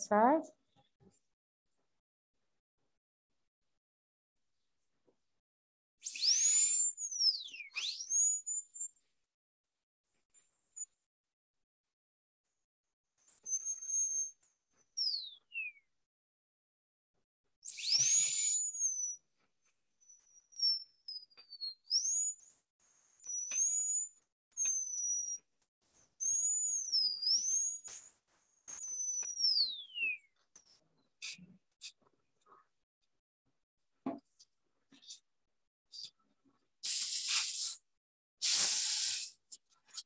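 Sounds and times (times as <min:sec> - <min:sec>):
spray hiss: 0:36.8 - 0:37.8, 0:38.4 - 0:39.4.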